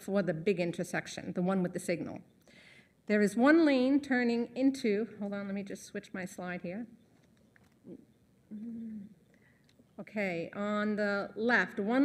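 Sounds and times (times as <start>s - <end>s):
woman humming: 7.9s - 9.2s.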